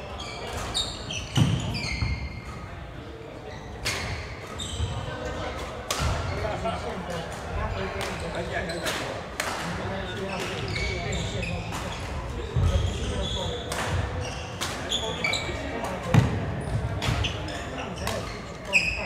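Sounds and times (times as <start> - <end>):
murmur of voices: 0.0 - 19.0
shoes squeaking on court: 0.1 - 2.7, 3.4 - 5.3, 10.1 - 19.0
racket hitting shuttlecock: 5.8 - 6.2, 13.7 - 14.0.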